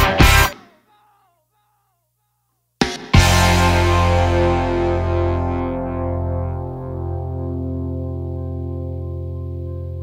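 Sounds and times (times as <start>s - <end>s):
distorted electric guitar chord: 3.2s - 10.0s.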